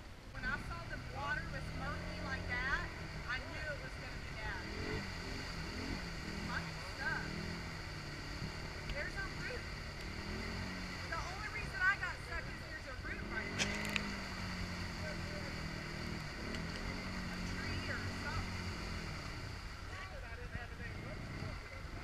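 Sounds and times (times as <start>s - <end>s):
atv engine revving: 0.0s - 22.0s
sharp clicks: 13.6s - 14.1s.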